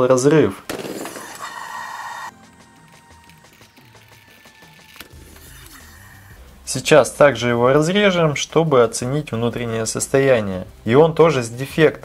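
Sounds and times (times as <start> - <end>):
faint background music: 0.0 - 1.1, 1.8 - 12.0.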